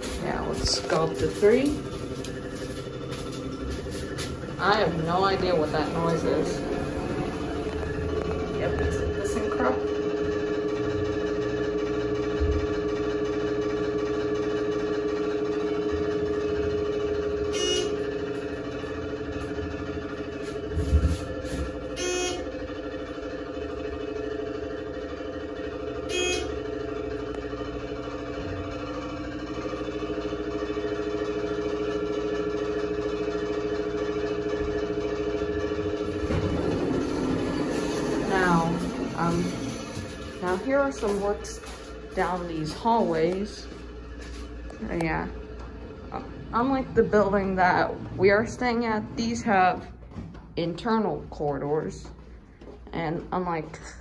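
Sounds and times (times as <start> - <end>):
elevator hum of held tones: 0.0 - 54.0.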